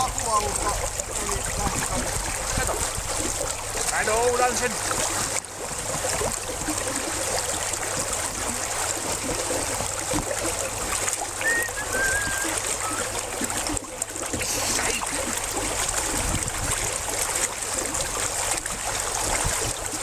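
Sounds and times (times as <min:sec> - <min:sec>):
water splashing and sloshing: 0:00.0 - 0:20.0.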